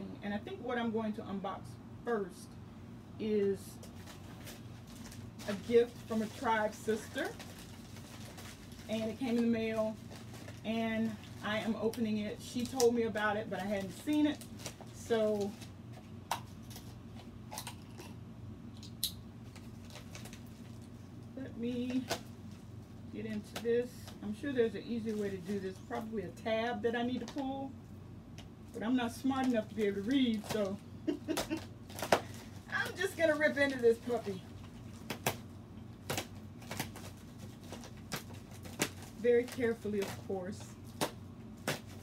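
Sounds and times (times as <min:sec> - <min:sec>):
low steady hum: 0:00.0 - 0:42.0
plastic mailer rustling: 0:03.5 - 0:18.0, 0:19.4 - 0:27.7, 0:28.6 - 0:42.0.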